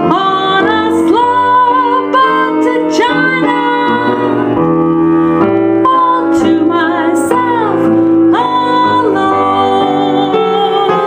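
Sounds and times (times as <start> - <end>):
woman singing: 0.0 - 4.6, 5.7 - 11.0
piano chords: 0.0 - 11.0.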